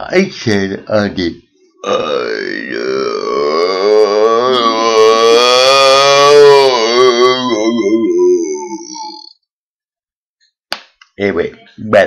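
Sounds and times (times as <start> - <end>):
man's drawn-out oooh: 1.8 - 9.3.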